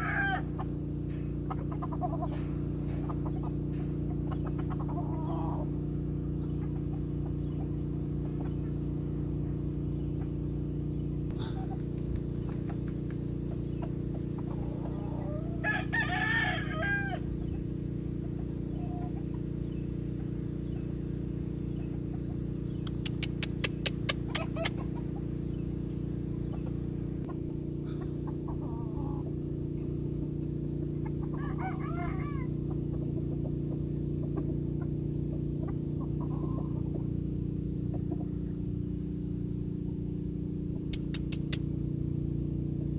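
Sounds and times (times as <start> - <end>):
rooster crowing: 0.0 - 0.6, 14.6 - 17.5, 28.5 - 29.3, 31.2 - 32.7
steady low hum: 0.0 - 42.9
quick sharp clicks: 22.8 - 24.8, 40.9 - 41.7.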